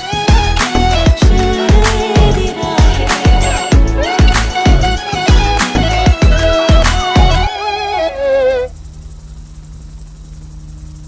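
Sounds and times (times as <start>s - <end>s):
steady low hum: 7.3s - 11.0s
faint high buzz: 7.5s - 11.0s.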